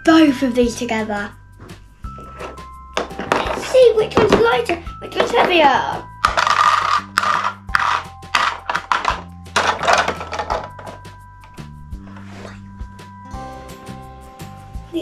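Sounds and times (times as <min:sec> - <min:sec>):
background music of held tones: 0:00.0 - 0:15.0
plastic toys clattering into bowls: 0:02.4 - 0:11.1.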